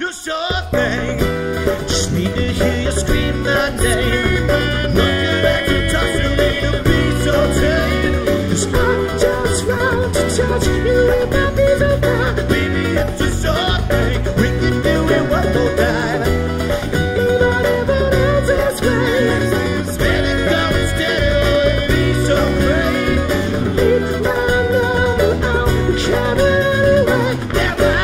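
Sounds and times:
acoustic guitars: 0.0s - 28.0s
man singing lead: 0.0s - 28.0s
electric bass: 0.6s - 28.0s
djembe drumming: 0.8s - 28.0s.

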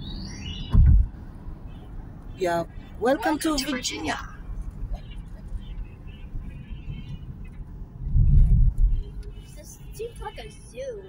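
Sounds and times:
car road noise rumble: 0.0s - 11.0s.

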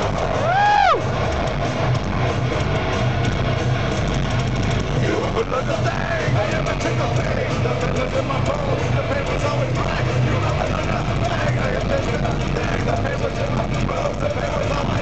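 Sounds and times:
concert crowd shouting and cheering: 0.0s - 15.0s.

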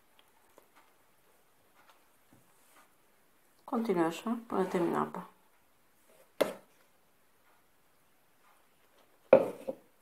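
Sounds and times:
dough knocking against glass bowl: 9.3s - 9.8s.

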